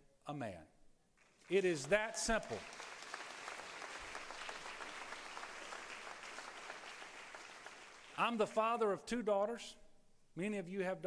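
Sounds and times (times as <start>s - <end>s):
audience applauding: 1.2s - 8.5s.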